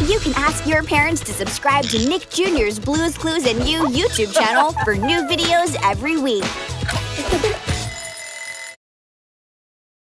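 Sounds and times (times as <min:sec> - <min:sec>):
bell-like electronic chime: 0:07.8 - 0:08.8.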